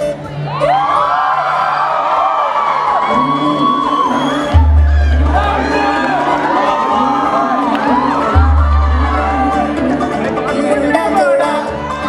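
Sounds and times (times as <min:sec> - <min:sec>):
audience cheering and whooping: 0:00.4 - 0:10.3, 0:11.2 - 0:12.0
loud dance music over speakers: 0:02.9 - 0:12.0
heavy bass beat: 0:04.5 - 0:12.0.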